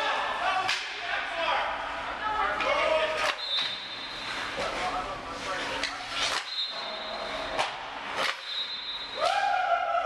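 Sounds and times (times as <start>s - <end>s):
hockey sticks striking pucks: 0.0s - 1.0s, 2.6s - 5.0s, 5.6s - 9.6s.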